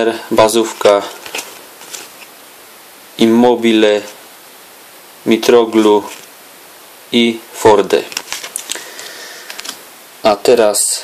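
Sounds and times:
trading cards clicking and flicking: 0:08.1 - 0:09.8.

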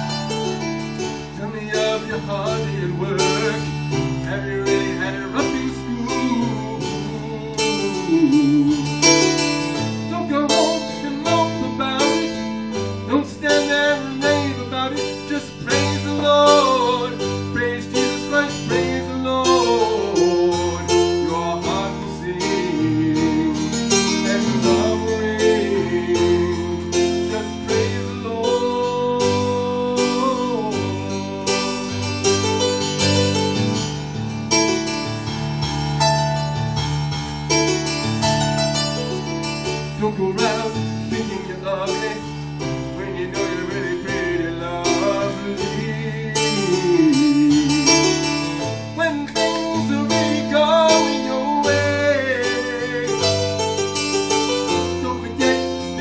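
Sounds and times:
electronic keyboard playing: 0:00.0 - 0:56.0
man singing into a microphone: 0:01.2 - 0:32.8, 0:39.9 - 0:53.6, 0:54.2 - 0:56.0.

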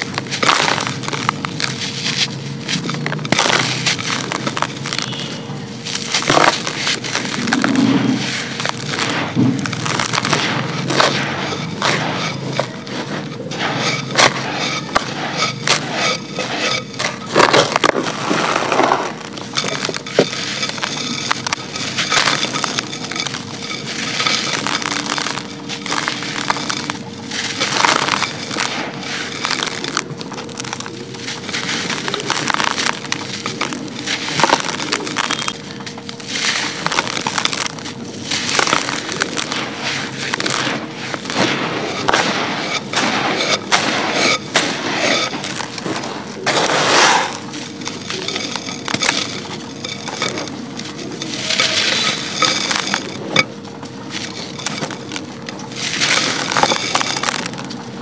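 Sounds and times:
grit pattering into clay pot: 0:00.0 - 0:58.0
gritty crackling of crumbling bars: 0:00.0 - 0:58.0.

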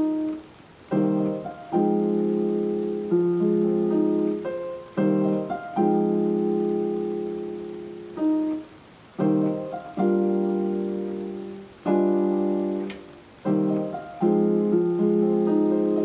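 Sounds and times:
higher piano melody notes: 0:00.0 - 0:16.0
slow piano chords: 0:00.0 - 0:16.0.

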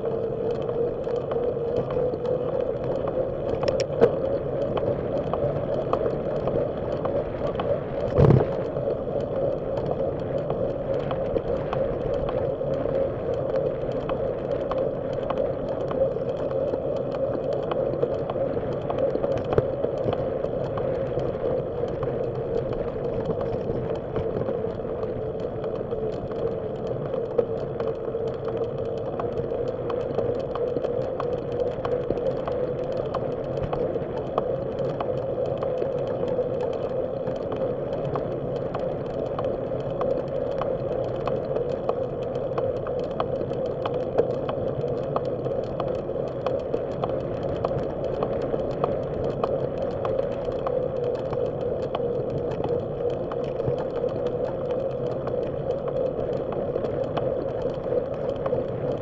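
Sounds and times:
bicycle tyres and drivetrain hum: 0:00.0 - 0:59.0
light ticks and rattles: 0:00.2 - 0:59.0.

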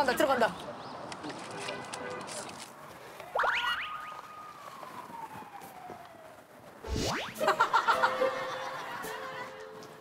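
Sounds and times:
comic whistle sliding: 0:06.9 - 0:07.6.

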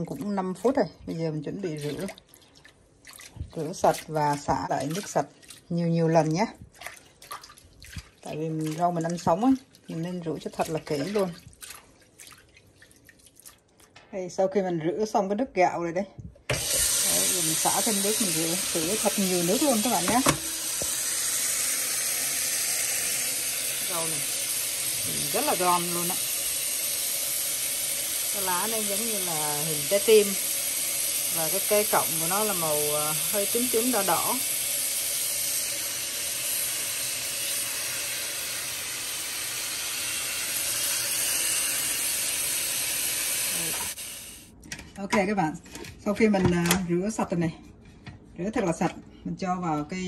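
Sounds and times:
tap water running onto greens: 0:01.5 - 0:14.1, 0:16.5 - 0:44.0
tap water splashing into sink: 0:06.7 - 0:09.9, 0:16.5 - 0:26.4.

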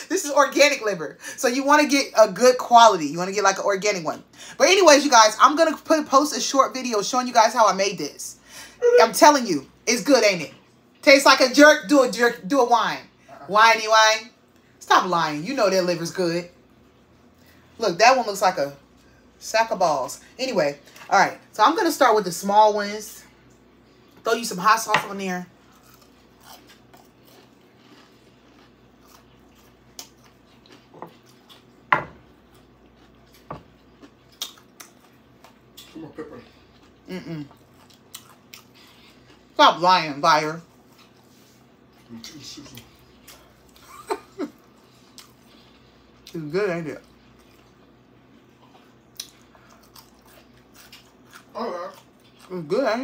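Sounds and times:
person chewing food: 0:25.6 - 0:39.6, 0:40.7 - 0:46.3, 0:47.0 - 0:52.5.

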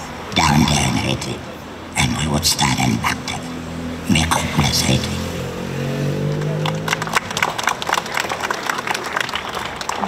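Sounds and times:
crowd clapping: 0:06.2 - 0:10.0.

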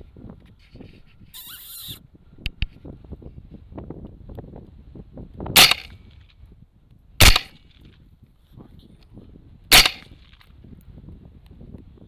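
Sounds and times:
rifle shots: 0:05.6 - 0:06.0, 0:07.2 - 0:07.6, 0:09.7 - 0:10.2.

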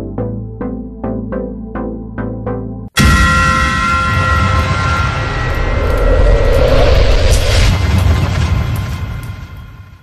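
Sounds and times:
deep rumble: 0:03.0 - 0:10.0
whoosh: 0:03.0 - 0:10.0.

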